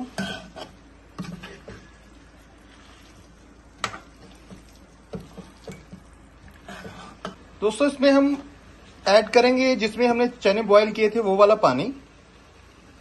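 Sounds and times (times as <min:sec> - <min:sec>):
spoon stirring thick food: 0:00.3 - 0:07.5.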